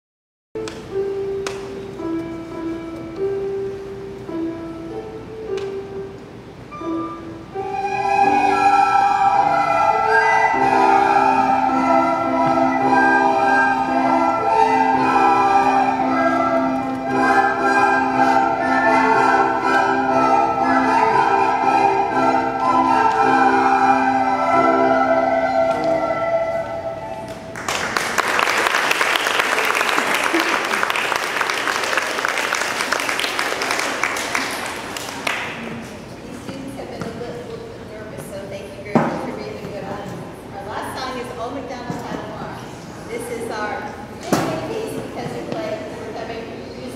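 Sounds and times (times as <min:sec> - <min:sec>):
electronic keyboard: 0:00.6 - 0:27.6
children playing recorders: 0:06.7 - 0:27.5
applause: 0:27.5 - 0:35.6.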